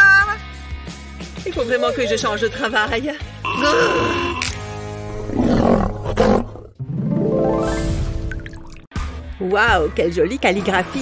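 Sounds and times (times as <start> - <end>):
background music: 0.0 - 11.0
woman groaning: 3.5 - 4.4.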